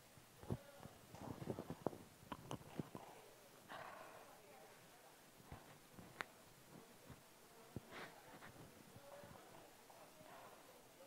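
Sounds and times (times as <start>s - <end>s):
microphone clicks and knocks: 0.4s - 3.0s
fabric rustling against microphone: 0.9s - 3.1s, 5.4s - 9.7s.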